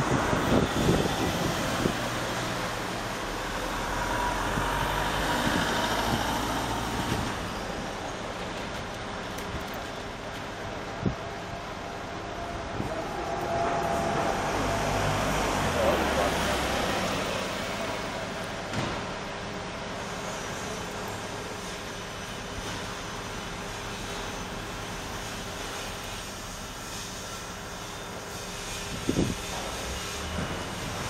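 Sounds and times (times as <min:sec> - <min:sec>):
motor vehicle passing: 0:00.0 - 0:07.6, 0:12.8 - 0:18.4
hum of city traffic: 0:00.0 - 0:31.0.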